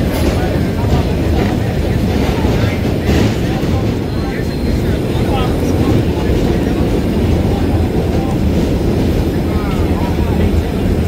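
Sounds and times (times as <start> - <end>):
subway train rumbling in tunnel: 0.0 - 11.0.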